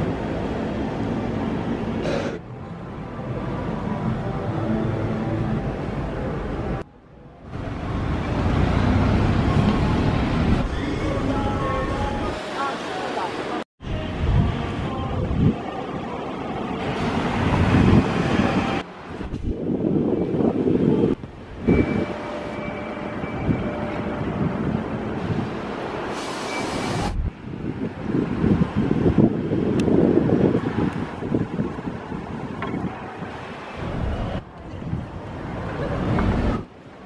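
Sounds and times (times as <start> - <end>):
passing car traffic: 0.0 - 37.0
wind buffeting microphone: 16.9 - 22.1, 27.0 - 36.7.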